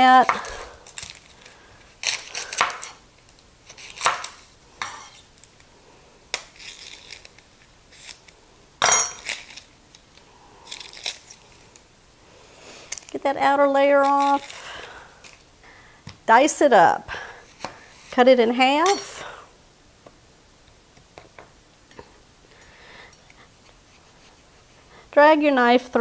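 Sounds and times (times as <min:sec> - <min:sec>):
onion skin crinkling: 0:00.2 - 0:05.7, 0:06.3 - 0:08.4, 0:09.1 - 0:11.9, 0:12.8 - 0:13.2, 0:13.9 - 0:15.5.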